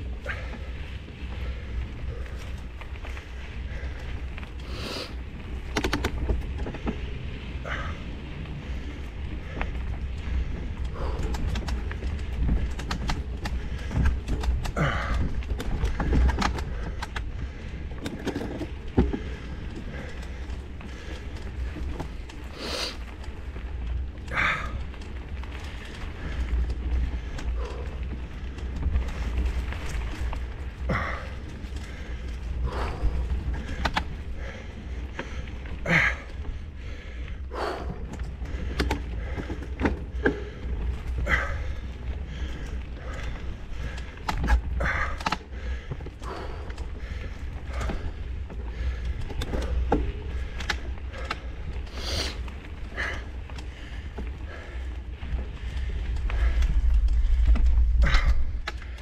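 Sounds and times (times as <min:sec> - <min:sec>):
low microphone rumble: 0:00.0 - 0:59.0.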